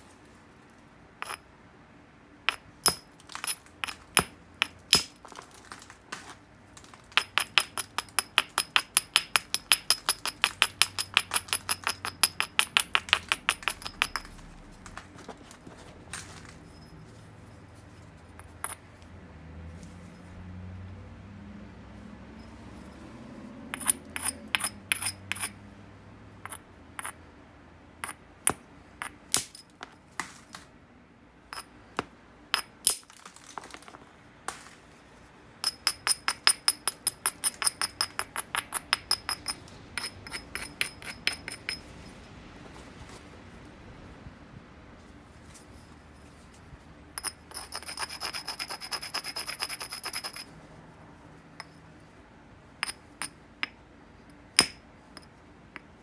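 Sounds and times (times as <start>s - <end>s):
stone striking and scraping obsidian: 2.5s - 5.4s, 7.2s - 14.9s, 23.7s - 25.6s.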